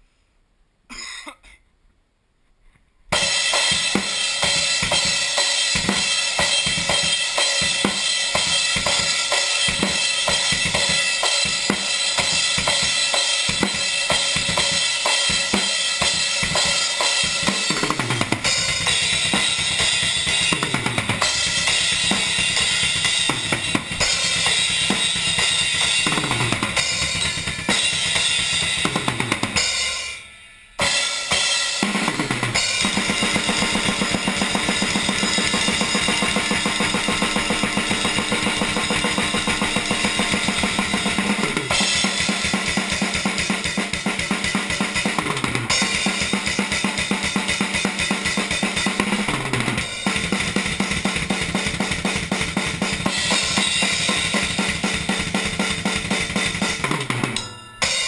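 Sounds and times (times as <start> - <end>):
acoustic drum kit played fast: 3.1 - 58.0.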